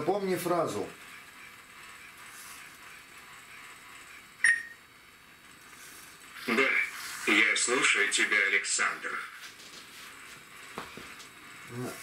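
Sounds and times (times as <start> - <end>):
short electronic beep: 4.4 - 4.8.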